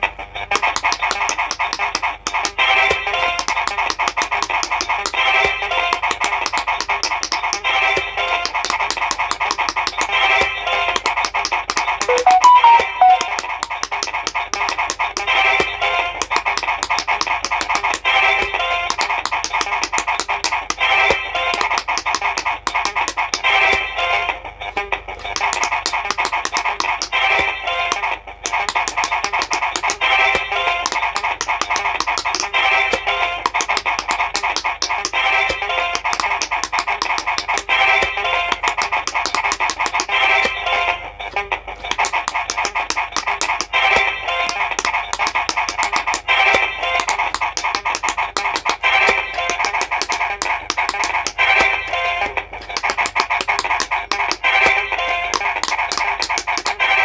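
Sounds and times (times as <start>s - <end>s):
rapid clicking of game buttons: 0.5s - 23.4s, 25.2s - 40.6s, 41.8s - 51.7s, 52.6s - 57.0s
looping electronic tune: 12.1s - 13.4s.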